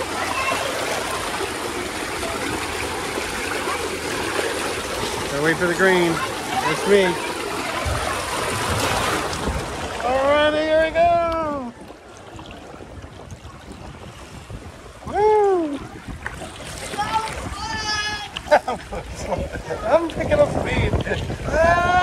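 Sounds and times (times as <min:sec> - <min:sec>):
water rushing down a slide: 0:00.0 - 0:22.0
person whooping: 0:15.1 - 0:15.8, 0:21.5 - 0:22.0.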